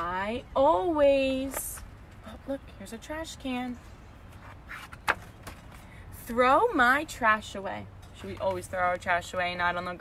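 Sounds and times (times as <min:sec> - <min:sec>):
book pages turning: 0:04.3 - 0:05.8.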